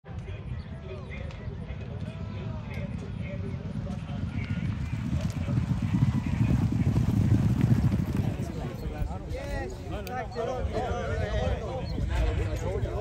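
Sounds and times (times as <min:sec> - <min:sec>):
horses galloping on turf: 0:01.2 - 0:10.1.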